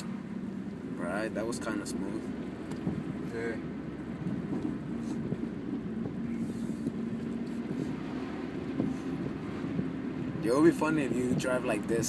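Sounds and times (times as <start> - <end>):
car engine running: 0.0 - 12.0
road noise: 0.0 - 12.0.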